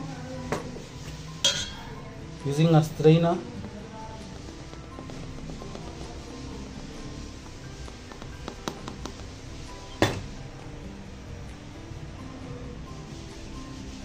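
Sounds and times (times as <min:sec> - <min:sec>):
background music: 0:00.0 - 0:14.0.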